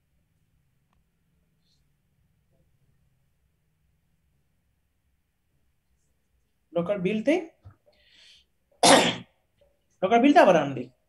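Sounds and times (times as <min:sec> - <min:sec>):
faint breath in: 0:07.9 - 0:08.6
person coughing: 0:08.8 - 0:09.3.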